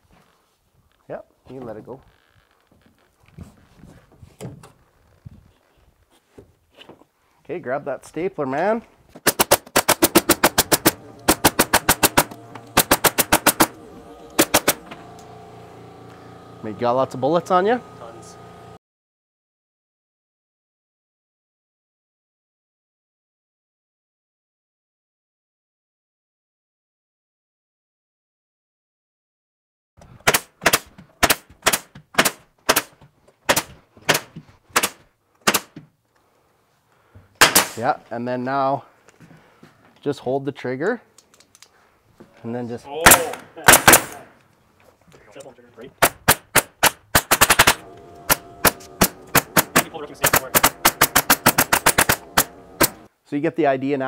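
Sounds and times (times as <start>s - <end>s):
pneumatic stapler shots: 9.2s - 15.4s, 30.1s - 35.8s, 37.4s - 37.8s, 43.1s - 44.3s, 46.0s - 53.1s.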